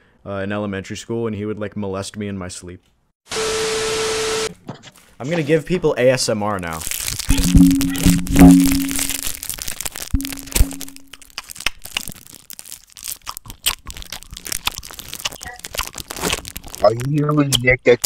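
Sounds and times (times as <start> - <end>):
hard candy crunching: 6.6 - 17.3.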